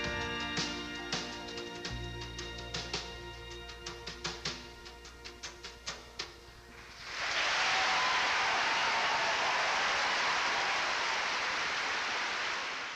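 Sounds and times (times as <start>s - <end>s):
audience applauding: 7.0s - 12.9s.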